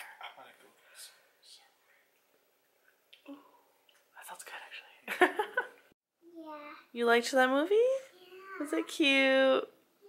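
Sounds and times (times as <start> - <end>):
person whispering: 0.0 - 2.1, 3.3 - 5.0.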